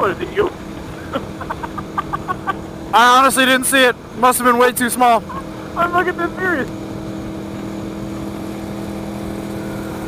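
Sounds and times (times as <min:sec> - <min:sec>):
man laughing in short bursts: 0:01.0 - 0:02.7.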